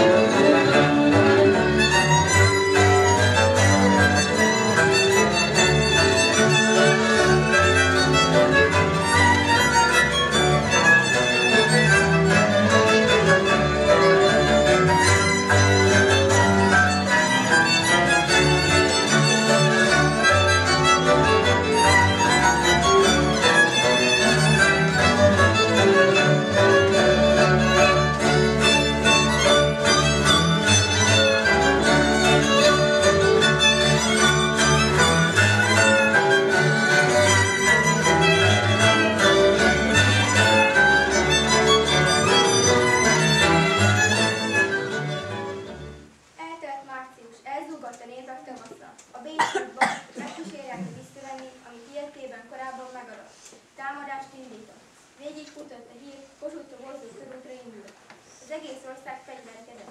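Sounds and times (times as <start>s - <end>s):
folk fiddle dance music: 0.0s - 46.2s.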